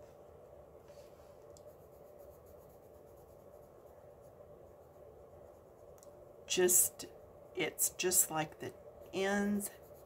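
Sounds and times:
pencil scratching on paper: 1.6 - 6.0, 9.2 - 10.0.

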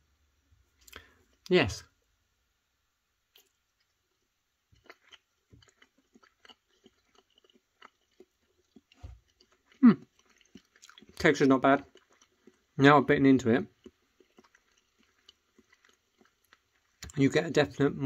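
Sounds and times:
biting and chewing: 4.7 - 17.4
person humming hmm: 9.8 - 10.1.

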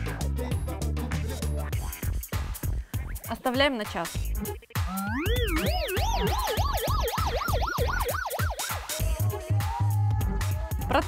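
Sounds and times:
background music with steady beat: 0.0 - 11.0
warbling siren-like electronic tone: 4.9 - 9.1.

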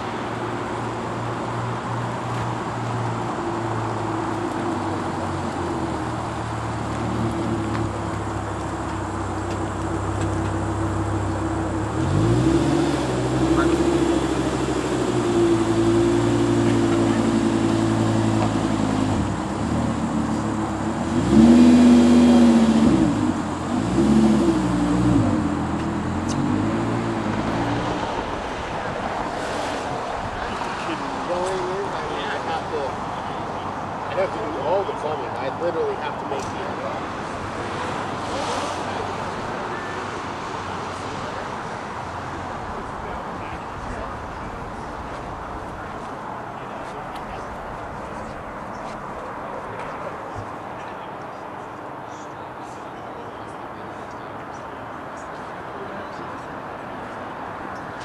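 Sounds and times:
car engine revving: 2.6 - 31.6.

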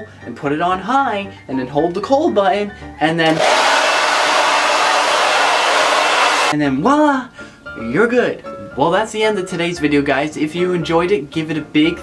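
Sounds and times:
blow dryer blowing air: 3.3 - 6.6.

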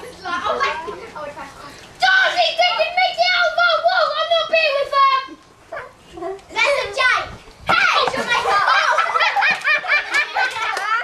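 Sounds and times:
children chattering excitedly: 0.0 - 11.0.

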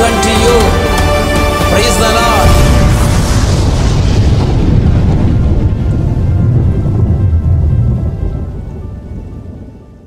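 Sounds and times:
thunder rumble: 0.6 - 10.0.

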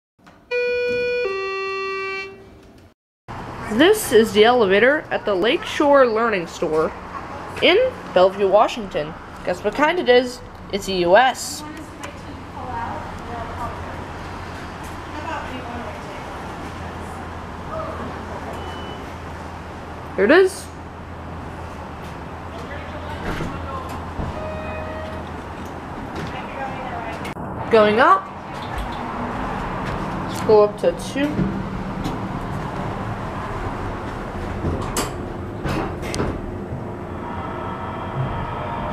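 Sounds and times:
elevator doors opening: 0.4 - 2.9, 23.1 - 27.3, 31.2 - 38.9
steady beep: 0.5 - 2.4
two-note ding-dong chime: 0.5 - 2.4.

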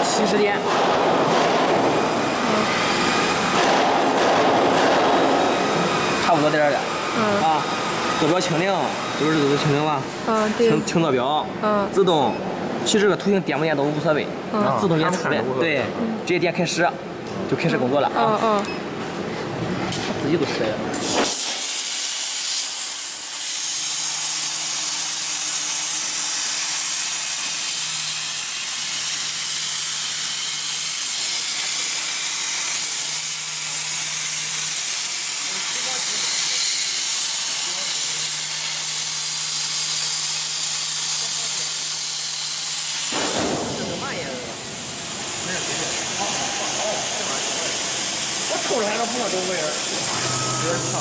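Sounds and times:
plasma arc hissing: 21.0 - 51.0.

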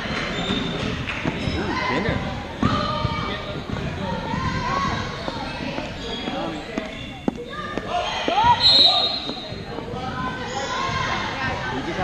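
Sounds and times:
voices echoing in a hall: 0.0 - 12.0.

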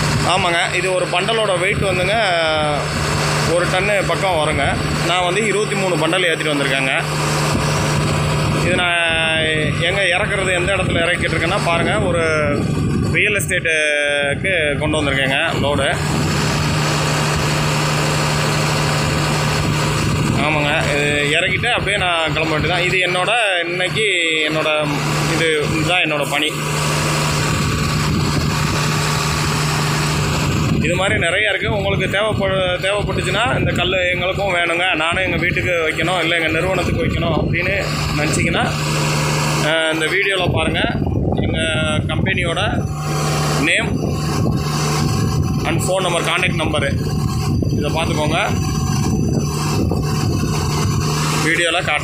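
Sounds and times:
crane engine humming: 0.0 - 52.0.

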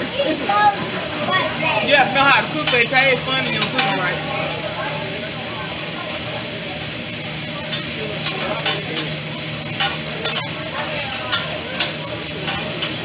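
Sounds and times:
seafood sizzling on griddle: 0.0 - 13.0.

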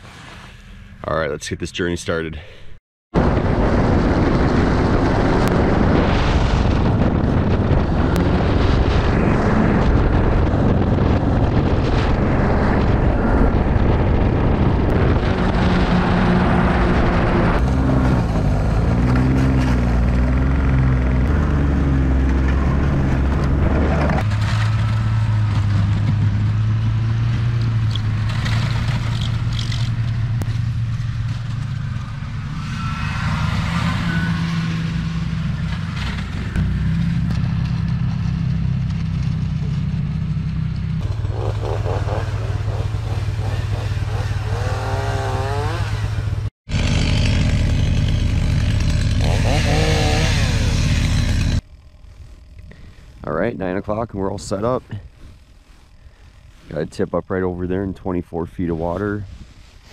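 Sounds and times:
snowmobile engine running: 3.2 - 51.6.

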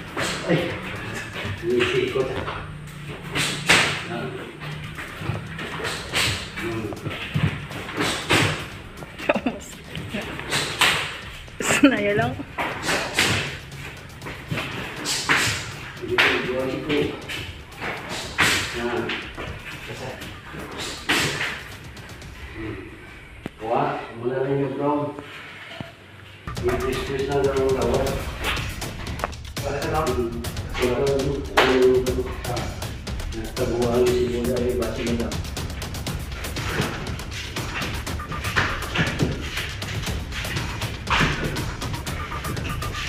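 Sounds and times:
sharp kick slaps: 3.3 - 4.1, 5.0 - 8.9, 12.6 - 22.2, 26.5 - 43.0
voices: 9.2 - 13.8, 26.5 - 28.6.

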